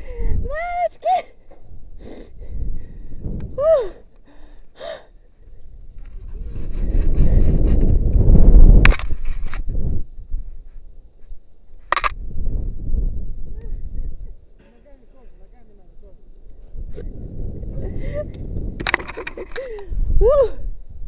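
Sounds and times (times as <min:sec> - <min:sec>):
wind rushing over microphone: 0:00.0 - 0:00.9, 0:01.5 - 0:04.1, 0:05.4 - 0:14.6, 0:15.4 - 0:21.0
person crying out: 0:03.6 - 0:04.0, 0:20.2 - 0:20.7
sharp click: 0:11.9 - 0:12.2.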